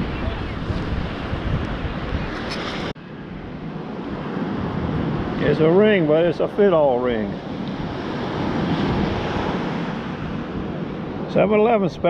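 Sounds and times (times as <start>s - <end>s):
beach surf: 0.0s - 12.0s
wind buffeting microphone: 0.0s - 12.0s.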